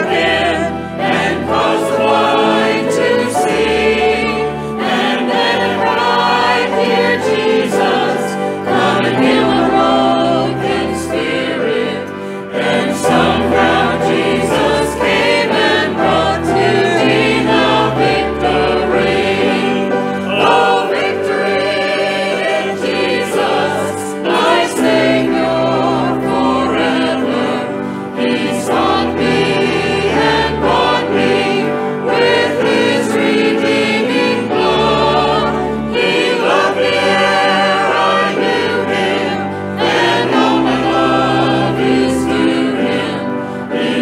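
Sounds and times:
choir singing a hymn: 0:00.0 - 0:44.0.

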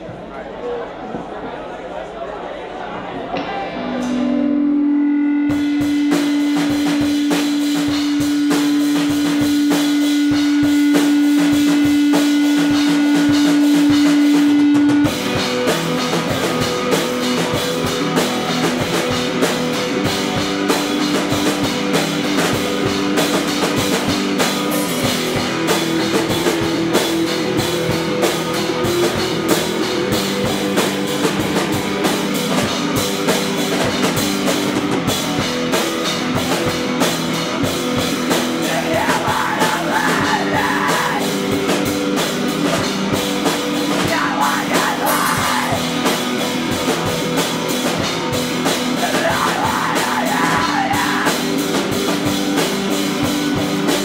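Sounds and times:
electric guitar: 0:03.3 - 0:54.0
fast busy drumming: 0:05.0 - 0:54.0.

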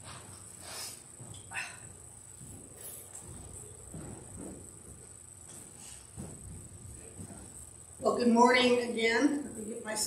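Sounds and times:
steady high hiss: 0:00.0 - 0:10.0.

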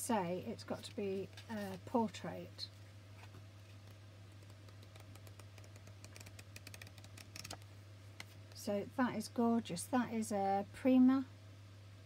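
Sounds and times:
paper cards flicked through: 0:04.4 - 0:07.6.

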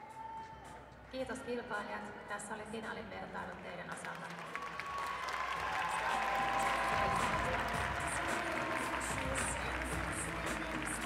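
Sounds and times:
background music with steady beat: 0:00.0 - 0:04.2, 0:05.0 - 0:11.0
audience applauding: 0:04.0 - 0:11.0.

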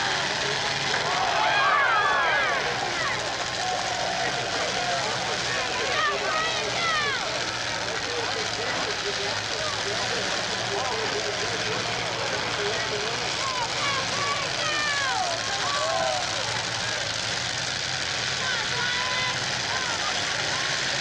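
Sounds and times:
car engines droning: 0:00.0 - 0:21.0
crowd voices and shouts: 0:00.0 - 0:21.0.

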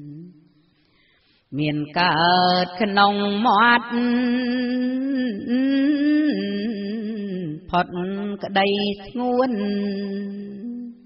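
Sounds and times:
woman chanting verse: 0:01.6 - 0:11.0.

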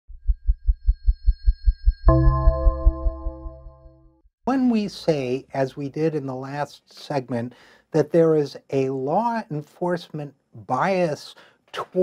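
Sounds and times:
low heartbeat-like thump: 0:00.1 - 0:03.6.

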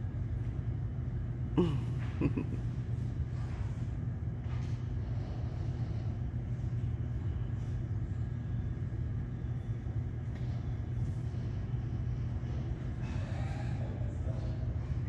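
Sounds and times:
low rumbling room hum: 0:00.0 - 0:15.0.

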